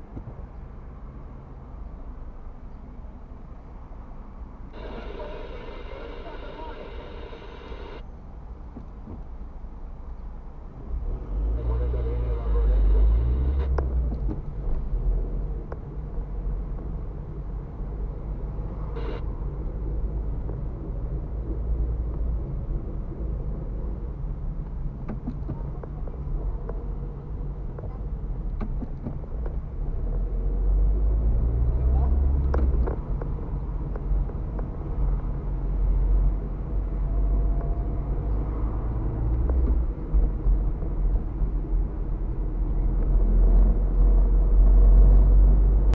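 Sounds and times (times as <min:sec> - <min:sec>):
car road and engine rumble: 0:00.0 - 0:45.9.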